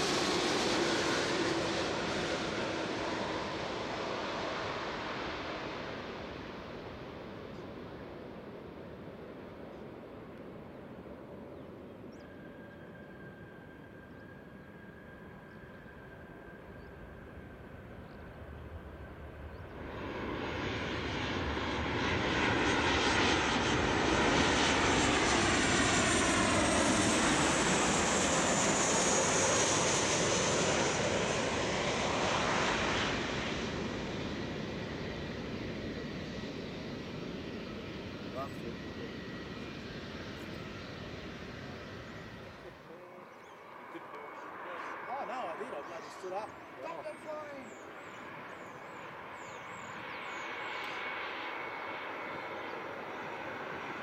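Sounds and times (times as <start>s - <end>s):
distant jet noise: 0.0s - 54.0s
jet airliner passing overhead: 0.0s - 54.0s.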